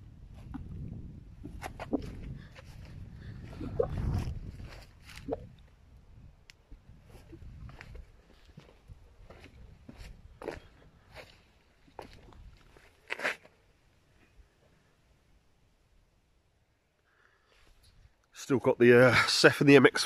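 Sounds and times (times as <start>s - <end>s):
footsteps on stone paving: 7.1s - 13.4s.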